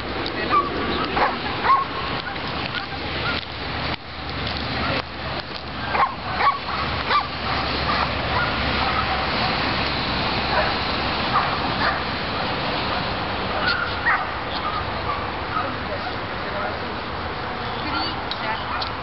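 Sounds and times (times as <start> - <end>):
steady background noise: 0.0 - 19.0
dog yipping: 0.5 - 3.4, 5.8 - 9.3, 11.3 - 12.0, 13.6 - 16.2, 17.8 - 18.9.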